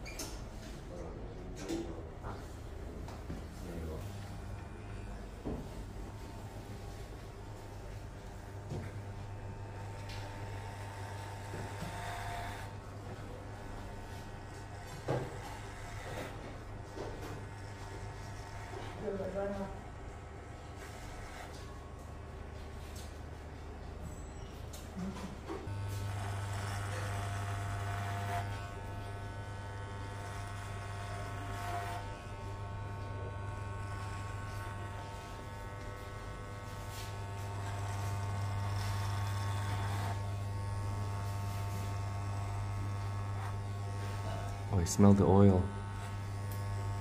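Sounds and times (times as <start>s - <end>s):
electric hair clippers buzzing: 7.3s - 23.1s, 25.6s - 47.0s.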